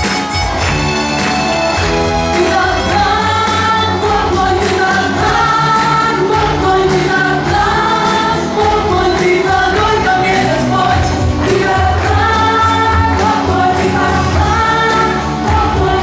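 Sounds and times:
bass guitar: 0:00.0 - 0:16.0
keyboard: 0:00.0 - 0:16.0
women singing together: 0:02.3 - 0:16.0.

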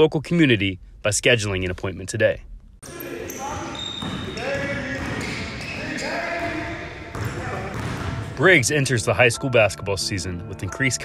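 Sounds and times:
basketballs bouncing: 0:02.8 - 0:08.6
echoing indistinct voices: 0:02.8 - 0:09.1.

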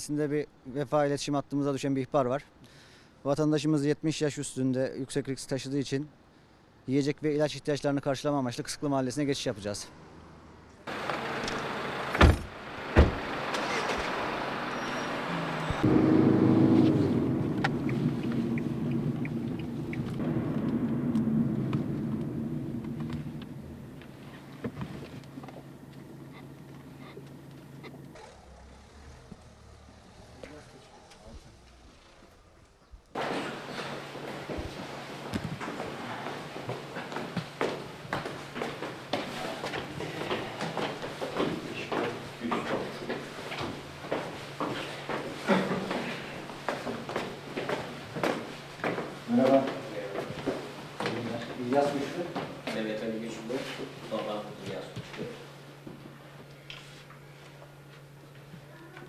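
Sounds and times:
car engine starting and running: 0:10.9 - 0:32.3
car doors slamming: 0:12.1 - 0:14.2
quick footsteps on stairs: 0:33.2 - 0:52.9.

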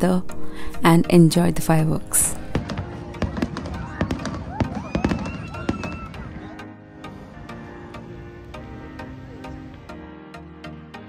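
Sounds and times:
fireworks bangs and crackles: 0:02.5 - 0:06.5.

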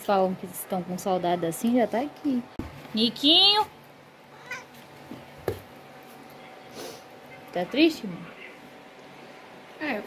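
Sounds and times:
cat meowing faintly: 0:04.3 - 0:04.8.

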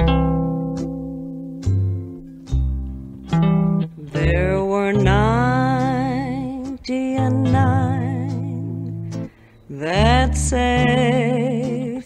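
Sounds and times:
electric guitar ringing notes: 0:00.0 - 0:11.5
woman singing with vibrato: 0:04.0 - 0:08.9, 0:09.7 - 0:12.0.

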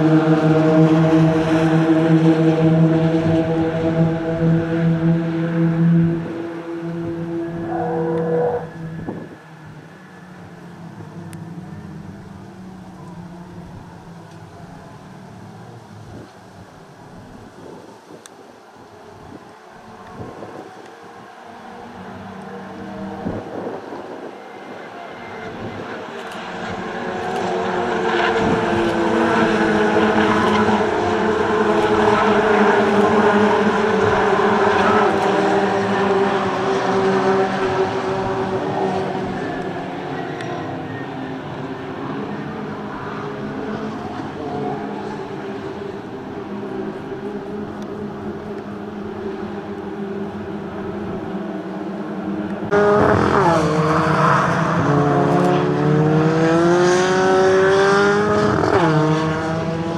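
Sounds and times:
race cars driving past: 0:00.0 - 0:59.9.

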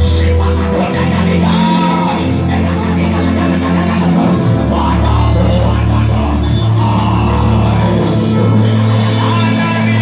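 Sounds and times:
deep bass line: 0:00.0 - 0:10.0
gospel band playing: 0:00.0 - 0:10.0
people singing on microphones: 0:00.0 - 0:10.0.

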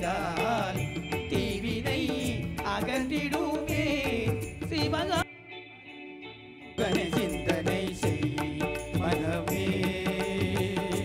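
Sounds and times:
percussion beat: 0:00.0 - 0:05.3, 0:06.8 - 0:11.0.

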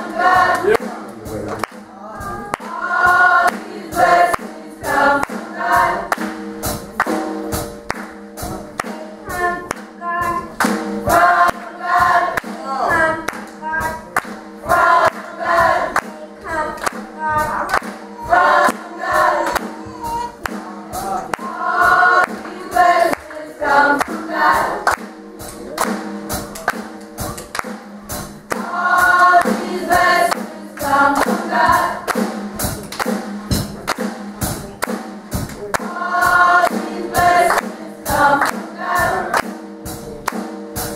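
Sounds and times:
choir singing in harmony: 0:00.0 - 0:06.4, 0:10.5 - 0:26.1, 0:28.5 - 0:32.8, 0:35.7 - 0:40.0
sharp percussive hits: 0:13.3 - 0:40.9.

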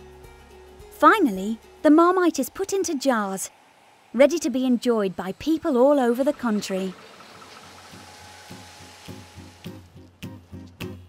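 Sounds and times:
faint soft low pulses: 0:01.0 - 0:09.7
faint thin whine: 0:01.2 - 0:09.8
machinery hum and hiss: 0:01.2 - 0:09.9.

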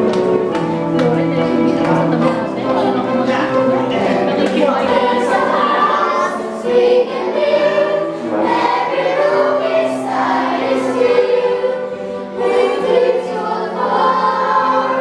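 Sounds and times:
choir singing in unison: 0:04.2 - 0:15.0.

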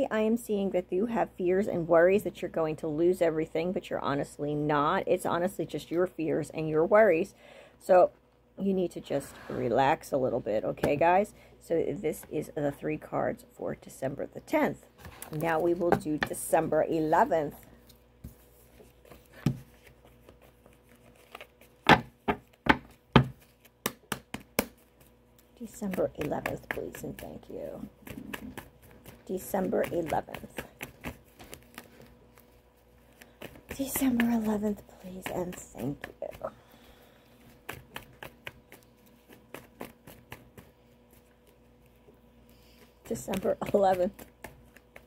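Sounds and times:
cards being shuffled: 0:17.8 - 0:36.5.

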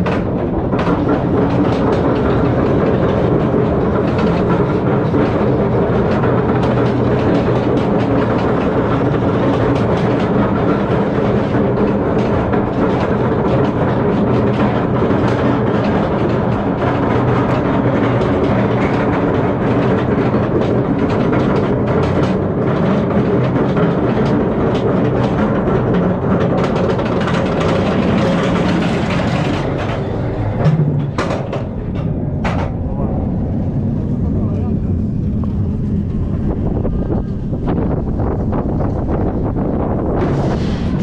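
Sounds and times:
lift chain rumble and hum: 0:00.0 - 0:41.0.

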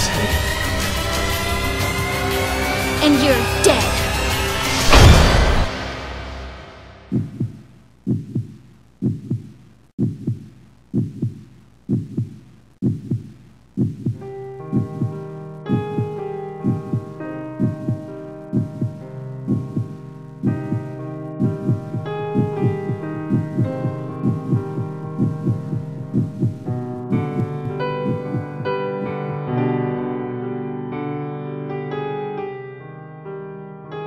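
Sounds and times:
heartbeat thumps: 0:07.1 - 0:29.1
eerie keyboard chords: 0:14.1 - 0:30.7.

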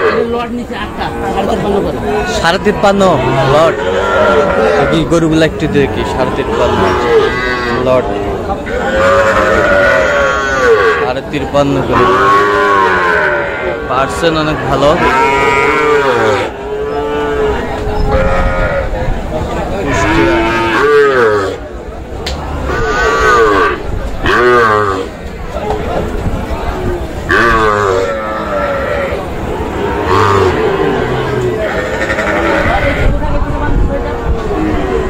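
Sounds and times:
people's voices: 0:00.0 - 0:35.0
calves mooing: 0:02.3 - 0:11.1, 0:11.8 - 0:18.9, 0:19.8 - 0:21.6, 0:27.3 - 0:33.2
calf bawling: 0:03.1 - 0:08.0, 0:08.6 - 0:11.1, 0:27.3 - 0:33.1.

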